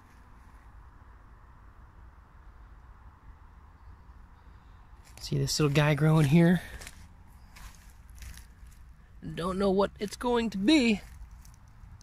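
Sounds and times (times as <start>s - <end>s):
footsteps on dry leaf litter: 5.0s - 8.9s, 10.0s - 11.8s.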